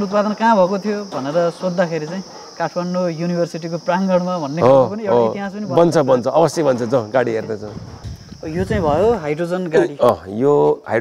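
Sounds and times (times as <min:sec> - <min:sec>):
man talking: 0:00.0 - 0:07.8, 0:08.4 - 0:11.0
high-pitched insect chirring: 0:00.0 - 0:11.0.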